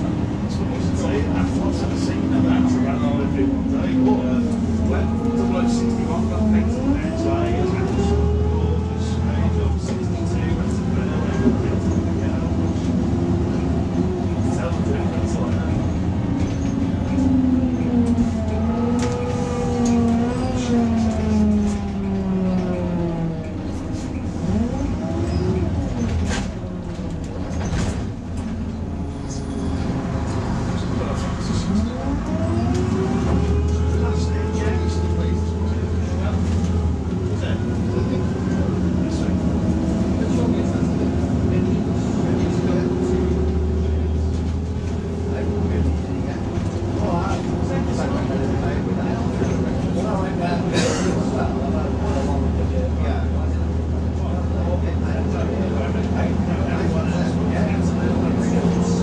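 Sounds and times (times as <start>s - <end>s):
bus diesel engine: 0.0s - 59.0s
road noise: 0.0s - 59.0s.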